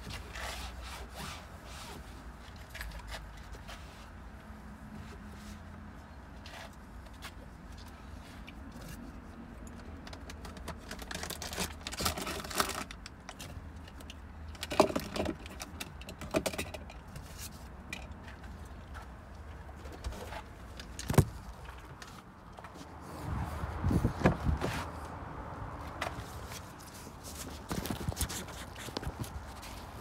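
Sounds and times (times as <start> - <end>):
knocks and clicks of handling: 9.6 - 22.9
phone rubbing and thumps: 23.9 - 24.9.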